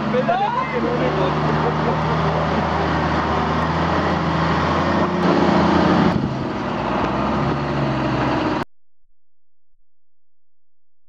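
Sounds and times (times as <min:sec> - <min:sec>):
truck engine under load: 0:00.0 - 0:08.7.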